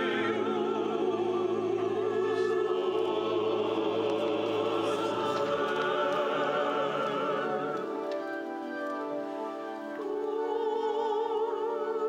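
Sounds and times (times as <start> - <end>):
church choir singing: 0.0 - 12.0
pipe organ: 0.0 - 12.0.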